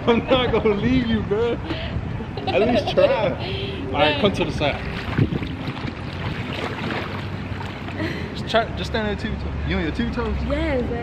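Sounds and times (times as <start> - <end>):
wind rumble on microphone: 0.0 - 8.4
pool water sloshing and lapping: 3.1 - 11.0.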